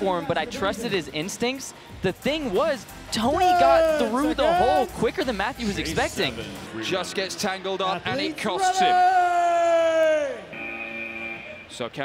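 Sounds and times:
person shouting a long call: 3.3s - 4.9s.

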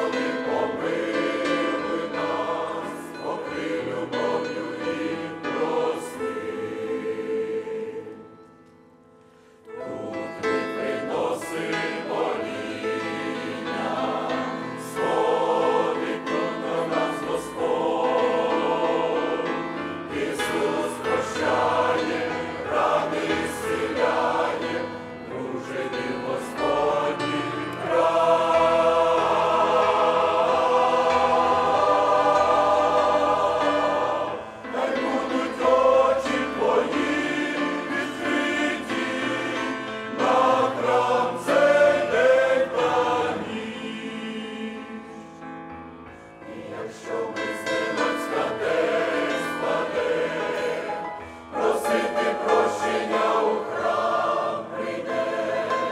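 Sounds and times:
choir singing a hymn: 0.0s - 8.8s, 9.4s - 55.9s.

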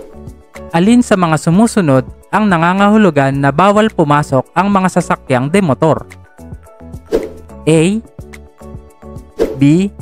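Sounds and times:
background music sustained tones: 0.0s - 10.0s.

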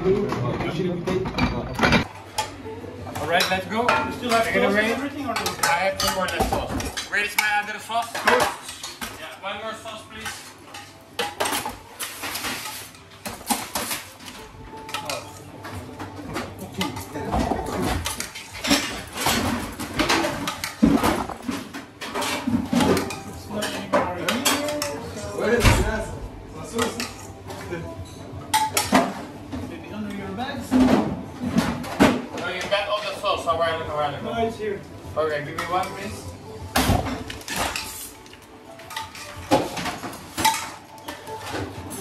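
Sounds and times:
utensils clattering on dishes: 0.0s - 33.8s, 35.3s - 42.0s.

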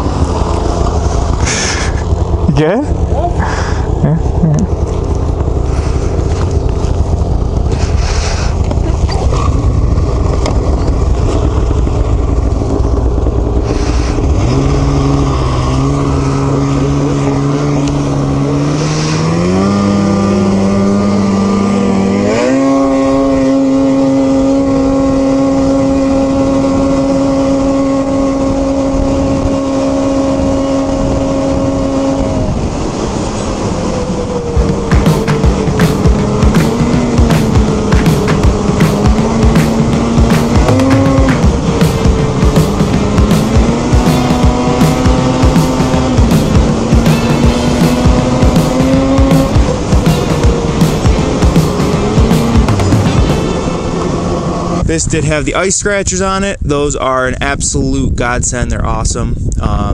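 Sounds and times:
snowmobile engine revving: 0.0s - 55.5s
background music with steady beat: 34.6s - 54.2s.

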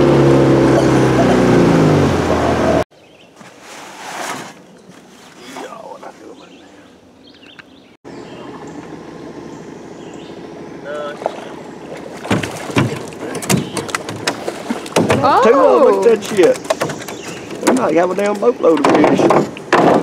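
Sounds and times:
steady low hum: 8.1s - 15.0s
fish knocking against metal hull: 12.2s - 15.4s, 16.0s - 20.0s
man calling out loudly: 15.2s - 16.4s.

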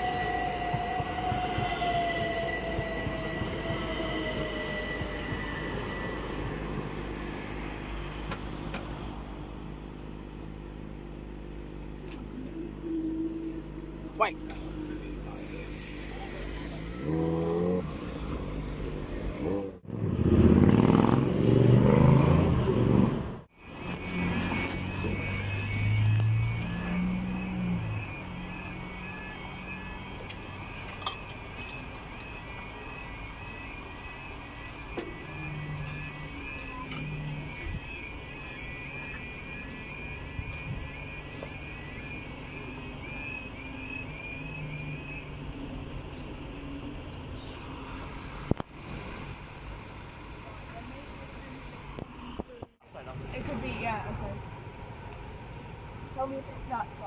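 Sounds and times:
level crossing warning alarm: 0.0s - 8.1s, 23.6s - 47.0s
motorcycle passing: 19.4s - 23.3s.

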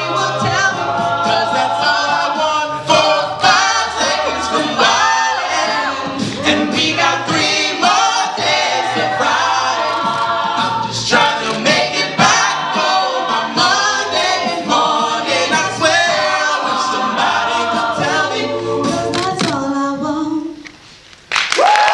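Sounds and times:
vocal percussion beat: 0.0s - 20.0s
choir singing a cappella: 0.0s - 20.6s.

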